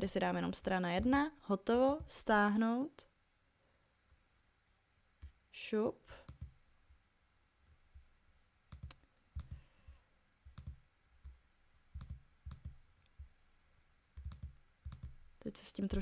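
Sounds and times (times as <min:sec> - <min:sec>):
computer mouse clicks: 0:06.2 - 0:06.6, 0:08.7 - 0:09.6, 0:10.4 - 0:13.3, 0:14.2 - 0:15.2.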